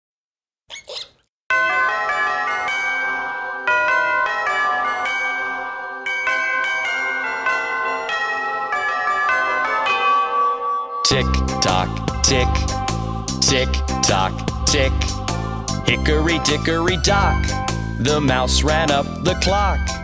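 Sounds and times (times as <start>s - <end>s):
chiming bell melody: 1.5s - 20.0s.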